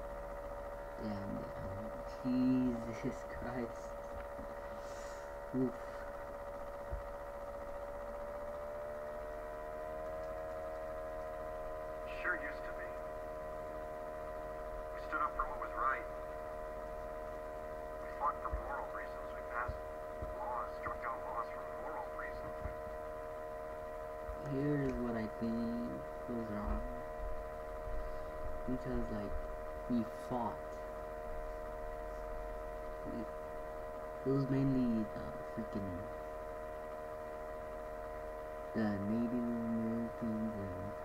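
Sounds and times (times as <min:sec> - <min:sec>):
steady hum of held pitches: 0:00.0 - 0:41.0.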